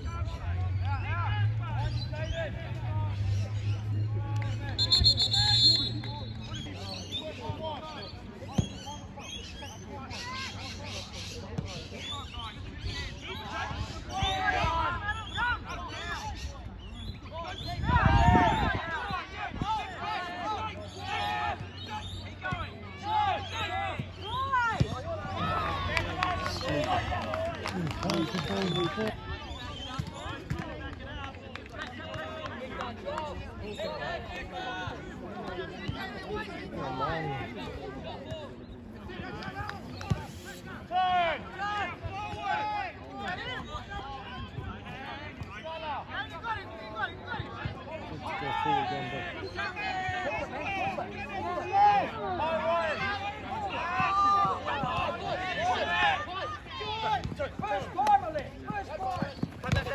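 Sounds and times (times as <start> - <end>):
distant shouts and calls: 0.1 - 30.7.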